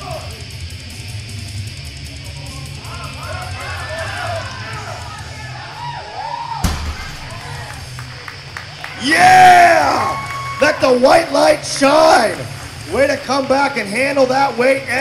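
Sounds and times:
shouts of encouragement: 0:02.9 - 0:06.6, 0:08.9 - 0:12.4
loud yelling: 0:02.9 - 0:07.9, 0:08.8 - 0:12.4
barbell thudding onto platform: 0:06.6 - 0:07.5
heavy metal music: 0:06.7 - 0:15.0.

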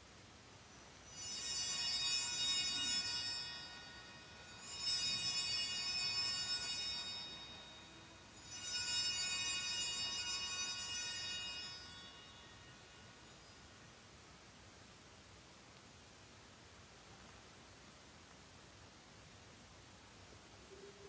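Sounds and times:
hand bells ringing: 0:01.0 - 0:13.5.

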